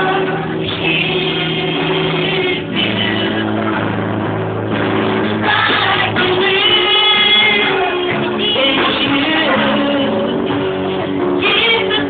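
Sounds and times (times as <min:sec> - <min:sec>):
singing with instrumental accompaniment: 0:00.0 - 0:12.0.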